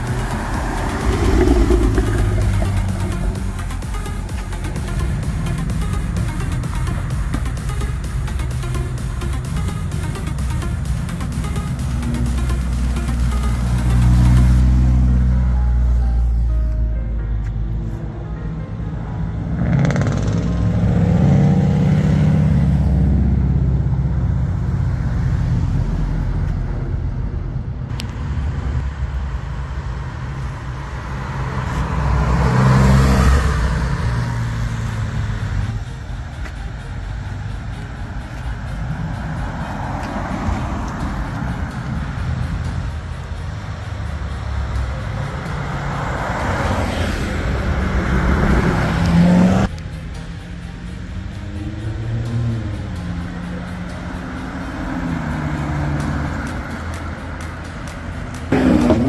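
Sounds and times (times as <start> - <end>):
cars driving past: 0.0 - 59.0.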